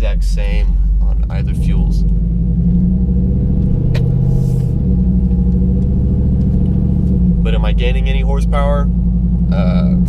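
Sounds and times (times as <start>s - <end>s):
engine drone inside car: 0.0s - 10.0s
sharp click: 3.9s - 4.2s.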